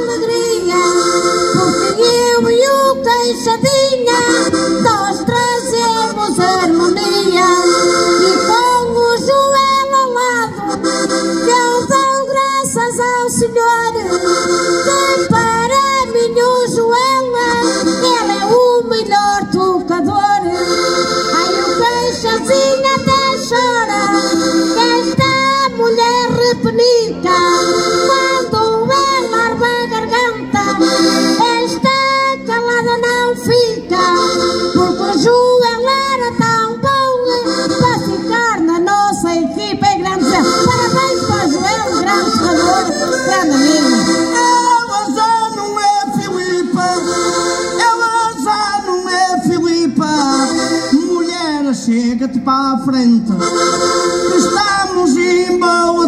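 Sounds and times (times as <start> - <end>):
woman singing into microphone: 0.0 - 10.8, 11.4 - 14.2, 14.8 - 20.7, 21.3 - 47.0
button accordion playing folk tune: 0.0 - 56.0.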